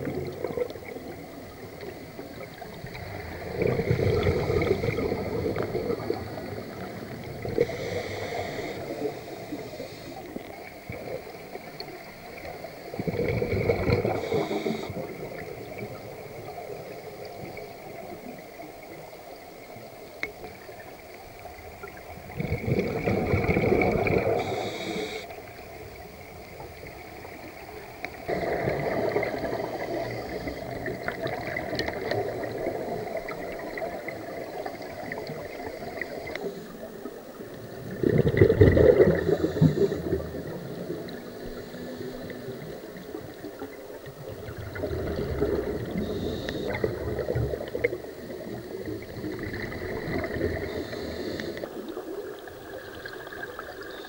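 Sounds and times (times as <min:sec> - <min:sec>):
bubbles gurgling underwater: 0:00.0 - 0:19.0, 0:20.2 - 0:24.9, 0:25.5 - 0:54.0.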